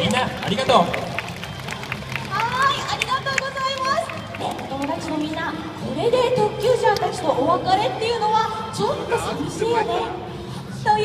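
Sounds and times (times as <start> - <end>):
woman talking over loudspeakers: 2.3 - 10.2.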